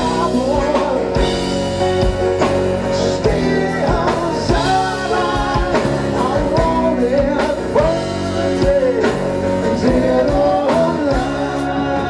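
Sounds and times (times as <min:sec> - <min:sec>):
drum kit steady beat: 0:00.0 - 0:12.0
electric bass: 0:00.0 - 0:12.0
man singing lead: 0:00.0 - 0:12.0.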